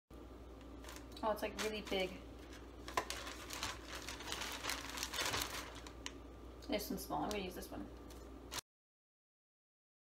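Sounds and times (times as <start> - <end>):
plastic bag crinkling: 0.7 - 6.2, 7.2 - 8.6.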